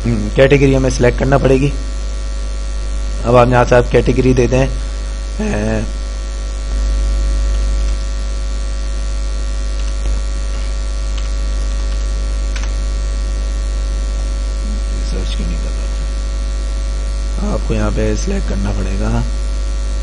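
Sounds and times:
electrical mains hum: 0:00.0 - 0:20.0.

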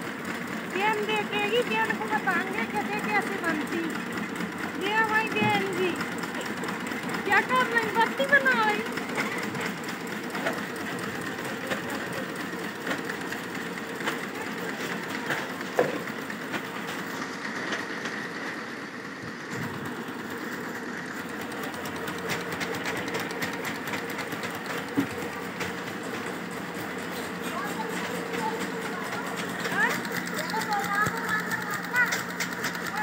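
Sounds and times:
machinery clattering: 0:00.0 - 0:33.0.

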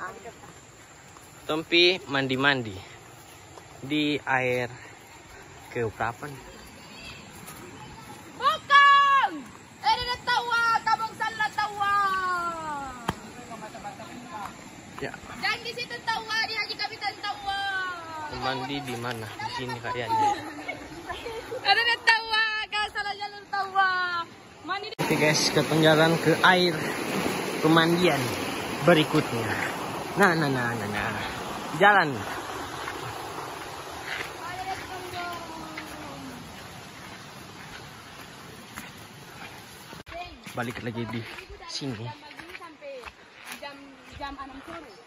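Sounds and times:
leaves rustling underfoot: 0:00.0 - 0:22.8, 0:25.0 - 0:45.0.

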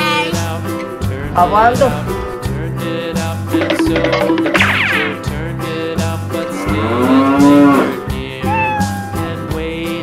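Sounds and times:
nursery rhyme music: 0:00.1 - 0:10.0.

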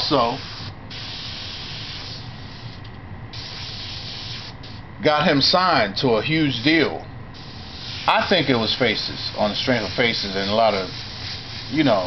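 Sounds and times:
airbrush spraying hiss: 0:00.0 - 0:04.8, 0:07.4 - 0:12.0.

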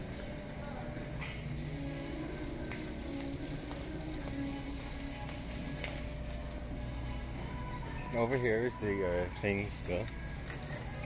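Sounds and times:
background music: 0:00.0 - 0:11.0
steady low hum: 0:00.0 - 0:11.0.

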